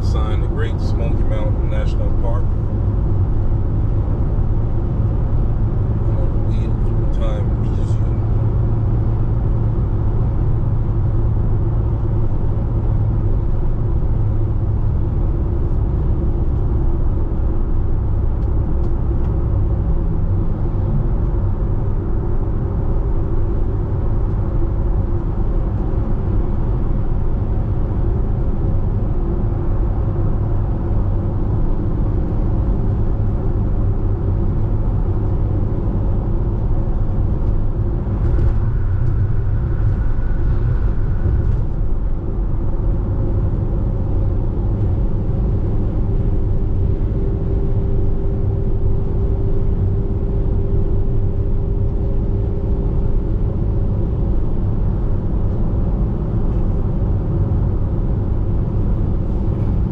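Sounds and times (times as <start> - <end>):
tyre and engine rumble: 0.0 - 59.9.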